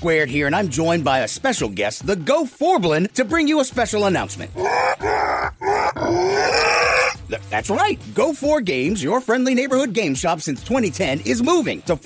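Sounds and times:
man growling and grunting: 4.4 - 7.3.

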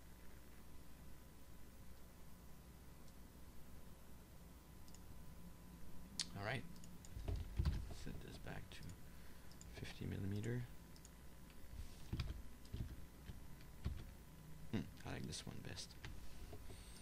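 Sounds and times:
keyboard keystrokes: 6.8 - 7.9, 12.1 - 14.1.

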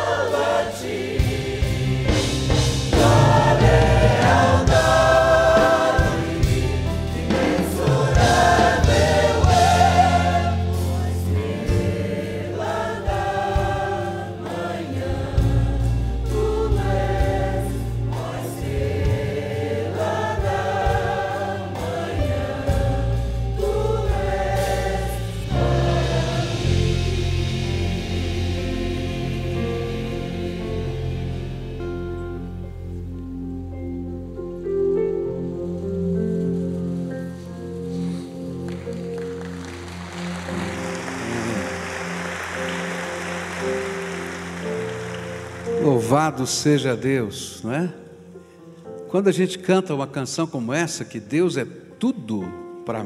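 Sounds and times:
mixed choir singing: 0.0 - 31.8, 37.9 - 46.4.

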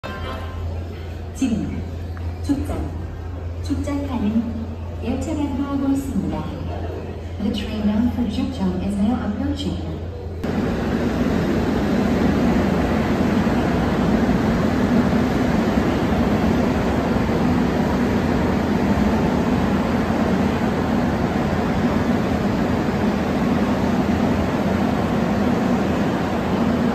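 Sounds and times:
electric train rolling on rails: 10.4 - 26.9.

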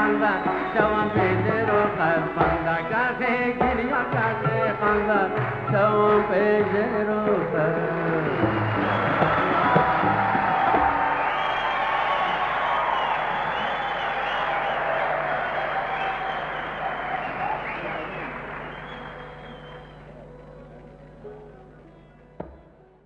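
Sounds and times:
whistles: 0.0 - 1.4, 8.6 - 9.9, 10.7 - 20.7
audience applauding and cheering: 0.0 - 2.8, 3.9 - 22.3
live song: 0.0 - 22.8.

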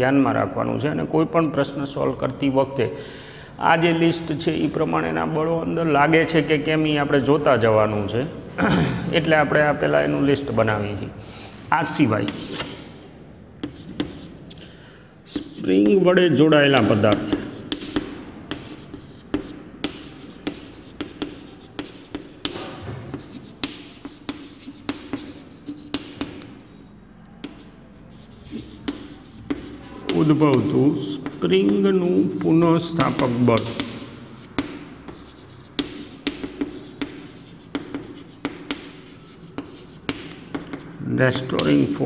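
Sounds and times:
chalk scratching on blackboard: 12.2 - 12.7, 13.6 - 14.4, 15.3 - 26.6, 27.4 - 41.8
chalk tapping on blackboard: 12.2 - 12.7, 13.6 - 14.3, 15.4 - 16.1, 16.7 - 26.6, 27.4 - 41.9.

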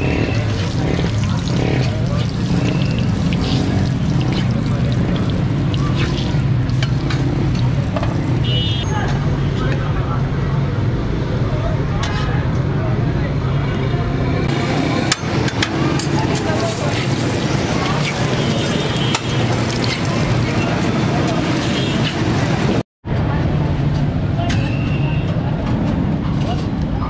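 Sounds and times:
traffic noise: 0.0 - 27.0.

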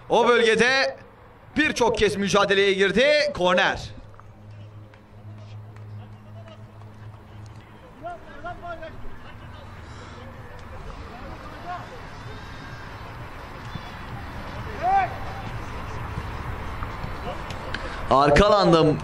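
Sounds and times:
footballers shouting: 0.0 - 19.0
steady background noise: 0.0 - 19.0.

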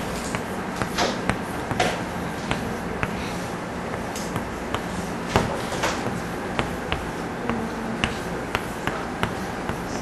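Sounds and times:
chalk tapping on blackboard: 0.0 - 10.0
steady room hum: 0.0 - 10.0.

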